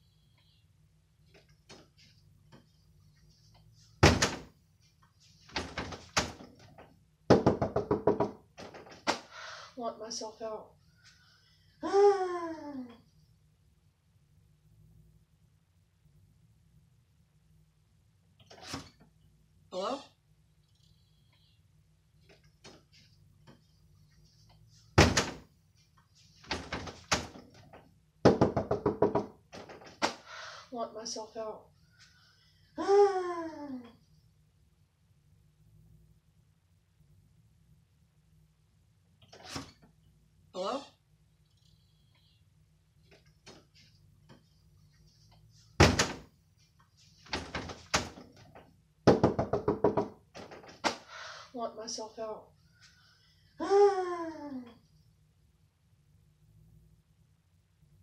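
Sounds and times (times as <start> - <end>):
door thudding in frame: 4.0 - 4.5, 25.0 - 25.5, 45.8 - 46.3.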